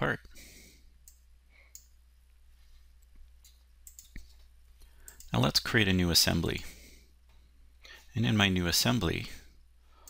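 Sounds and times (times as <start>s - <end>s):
low steady hum: 0.0s - 10.0s
computer mouse clicks: 1.0s - 2.0s, 3.4s - 4.4s, 5.0s - 5.4s.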